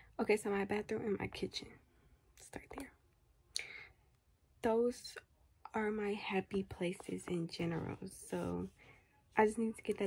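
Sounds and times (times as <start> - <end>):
woman breathing: 3.5 - 4.2, 8.7 - 9.3.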